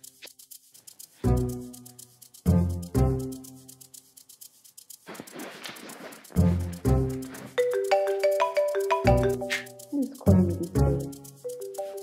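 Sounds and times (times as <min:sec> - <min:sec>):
film score deep beats: 0:00.0 - 0:04.5, 0:05.2 - 0:12.0
fast light high ticking: 0:00.0 - 0:12.0.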